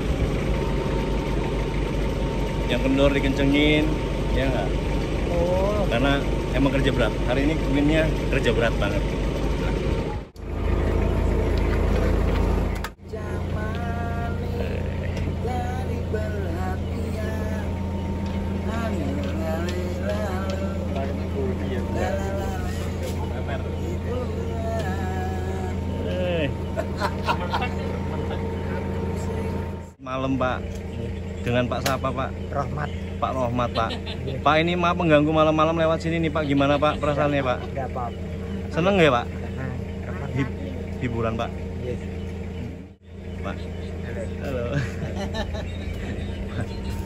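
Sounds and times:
loud low rumble: 0.0s - 47.0s
steady low hum: 0.0s - 47.0s
men talking: 2.6s - 10.0s, 13.6s - 17.6s, 18.6s - 47.0s.

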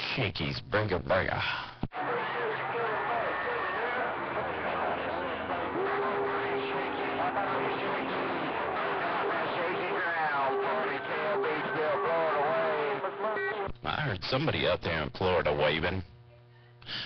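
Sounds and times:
garbled radio voices: 1.9s - 15.8s
radio static: 1.9s - 16.1s
steady whistle tone: 2.1s - 13.7s.

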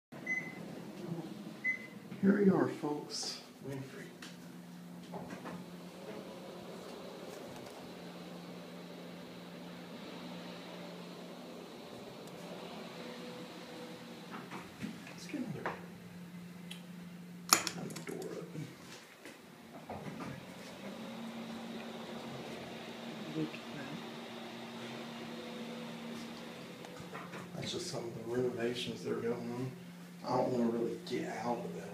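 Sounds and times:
elevator electronic beep: 0.2s - 0.6s, 1.6s - 2.0s
ventilation fan hum: 0.2s - 31.9s
elevator low rumble: 4.1s - 18.8s, 19.6s - 31.9s.

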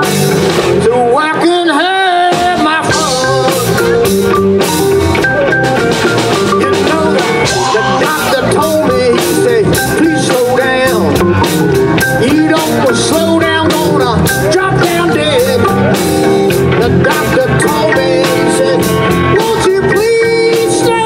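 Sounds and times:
blues band playing: 0.0s - 21.0s
pitch-bending guitar lead lines: 0.0s - 21.0s.

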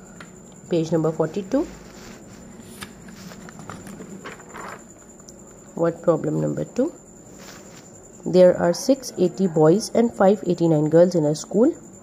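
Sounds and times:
paper page rustling: 1.6s - 4.9s.

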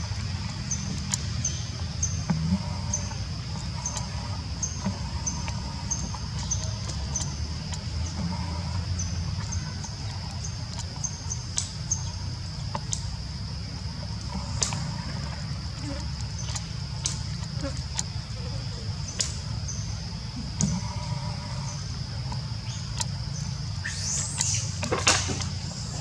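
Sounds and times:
steady high-pitched hum: 0.0s - 26.0s.

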